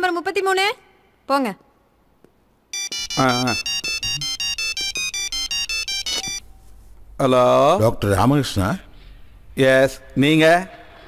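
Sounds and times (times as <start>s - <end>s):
phone ringtone beeping melody: 2.8s - 6.5s.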